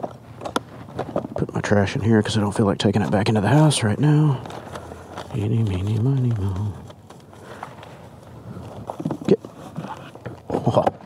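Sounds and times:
paper crinkling: 0:00.0 - 0:11.0.

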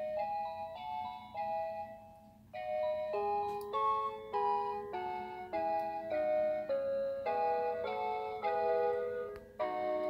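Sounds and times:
electronic tune melody: 0:00.0 - 0:10.0.

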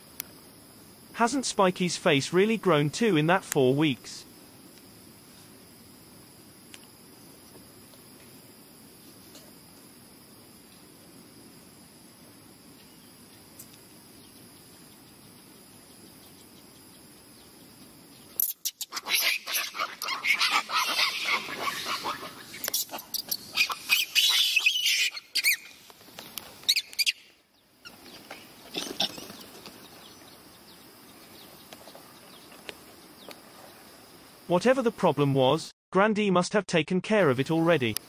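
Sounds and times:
monkeys screaming: 0:18.4 - 0:25.8, 0:26.6 - 0:27.2, 0:28.6 - 0:29.6.

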